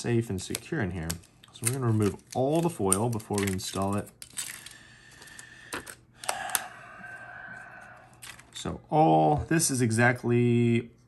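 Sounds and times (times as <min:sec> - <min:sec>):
paper wrap removed: 0:00.9 - 0:04.8.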